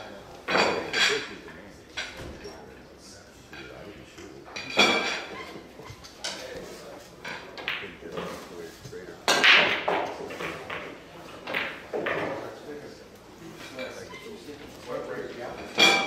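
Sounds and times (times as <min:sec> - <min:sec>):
cue ball cracking into racked balls: 0:09.3 - 0:12.4.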